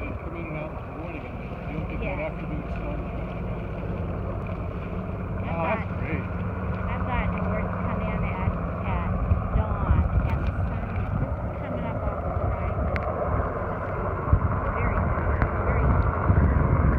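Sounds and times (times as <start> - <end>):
people talking: 0.0 - 3.3, 5.4 - 6.3, 6.9 - 14.0, 14.6 - 16.9
helicopter flying overhead: 0.0 - 16.9
wind on microphone: 0.0 - 16.9.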